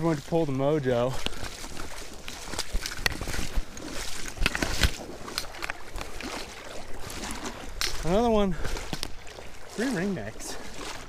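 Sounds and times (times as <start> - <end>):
water sloshing and splashing: 0.0 - 11.0.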